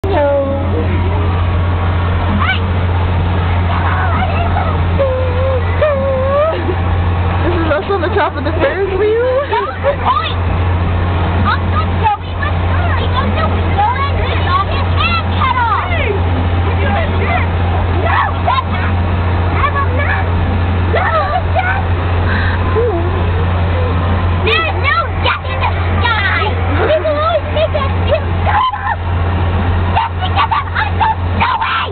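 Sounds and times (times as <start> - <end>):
children shouting and chattering: 0.0 - 31.9
low machine hum: 0.0 - 31.9.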